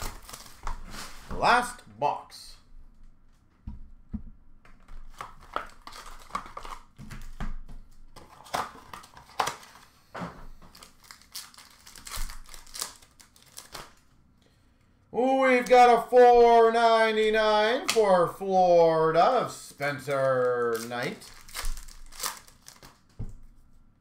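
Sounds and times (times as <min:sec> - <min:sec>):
card pack wrappers tearing: 0:00.0 - 0:01.2, 0:05.1 - 0:06.9, 0:08.2 - 0:09.9, 0:10.7 - 0:14.0, 0:20.0 - 0:23.1.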